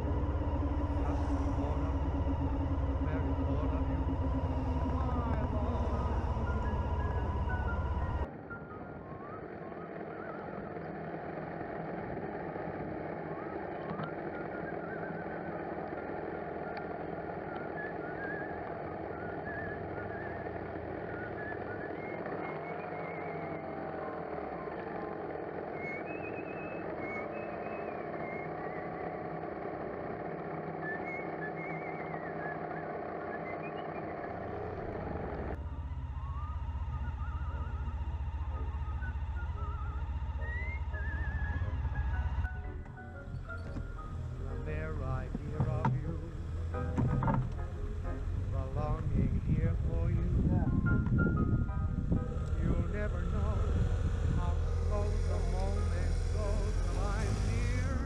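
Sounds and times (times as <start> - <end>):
motorcycle engine: 0.0 - 8.3, 9.2 - 58.0
wind and road noise: 34.0 - 58.0.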